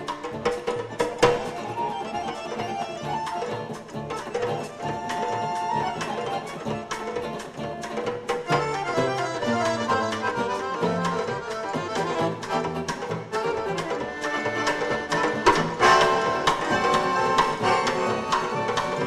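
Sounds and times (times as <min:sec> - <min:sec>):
accordion: 0:00.0 - 0:19.0
electric guitar: 0:00.0 - 0:19.0.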